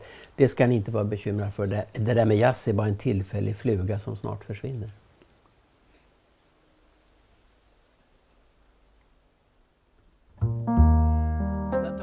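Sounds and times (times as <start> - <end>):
double bass low notes: 10.4 - 12.0
piano chords: 10.4 - 12.0.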